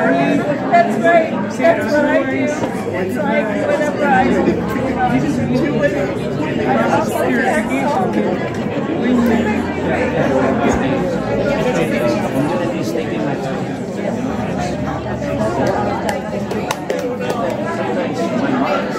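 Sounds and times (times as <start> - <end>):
many people talking: 0.0 - 18.9.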